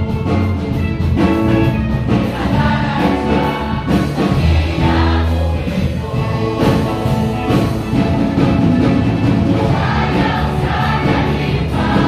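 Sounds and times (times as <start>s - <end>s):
church choir singing: 2.0s - 12.0s.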